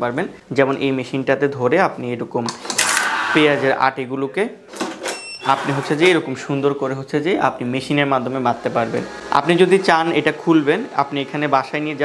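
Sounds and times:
tape-bundling machine rasping: 0:02.7 - 0:03.7, 0:08.3 - 0:12.0.

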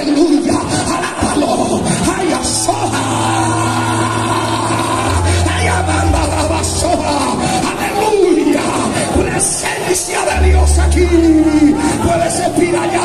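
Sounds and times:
background music: 0:00.0 - 0:13.0
congregation praising aloud: 0:00.0 - 0:13.0
low sustained notes: 0:02.4 - 0:08.2.

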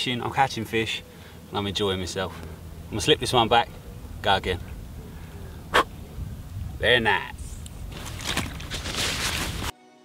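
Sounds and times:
rustling handling noise: 0:07.4 - 0:09.7.

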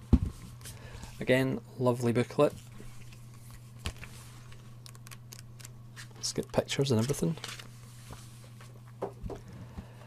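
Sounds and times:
paper booklet pages flicking: 0:04.8 - 0:07.7.

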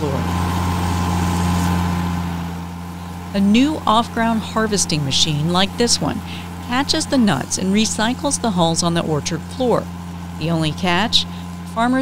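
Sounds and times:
harvesting machine engine humming: 0:00.0 - 0:12.0.

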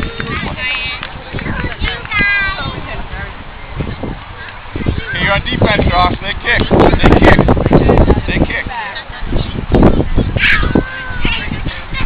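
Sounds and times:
chatter of several voices: 0:00.0 - 0:12.0.

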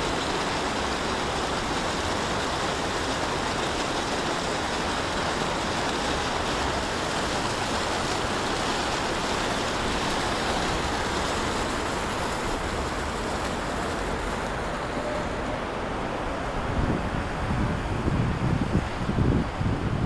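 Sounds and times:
fountain water splashing: 0:00.0 - 0:20.0.

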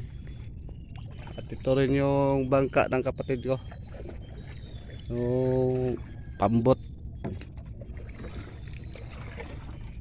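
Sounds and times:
steady low rumble: 0:00.0 - 0:09.0
faint water sounds: 0:00.0 - 0:10.0.

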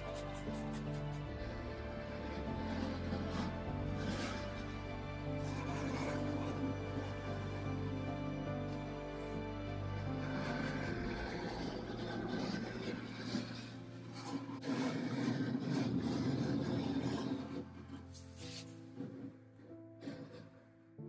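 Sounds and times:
scraper rasping over wood: 0:00.0 - 0:20.7
background music: 0:00.0 - 0:21.0.

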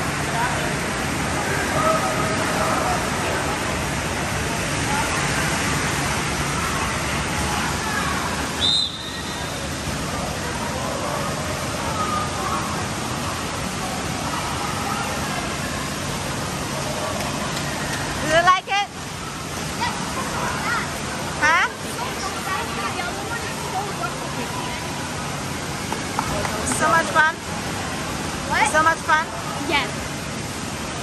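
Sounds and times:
rushing splashing water: 0:00.0 - 0:31.0
high squeal: 0:08.6 - 0:09.7.

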